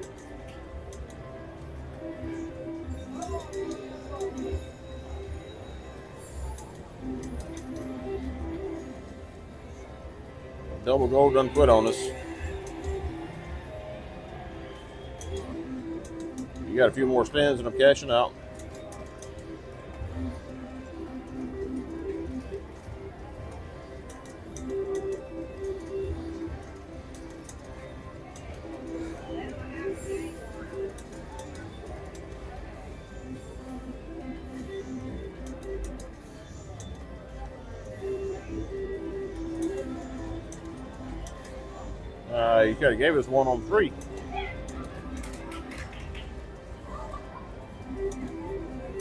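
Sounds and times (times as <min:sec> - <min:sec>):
background chatter: 0:00.0 - 0:49.0
background music: 0:00.0 - 0:49.0
slot machine reels spinning: 0:00.0 - 0:49.0.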